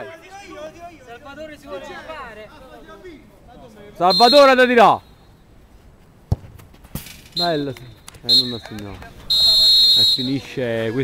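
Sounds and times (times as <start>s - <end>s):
football kicked with a thud: 6.3s - 7.1s
ball knocking against goal: 6.3s - 7.2s.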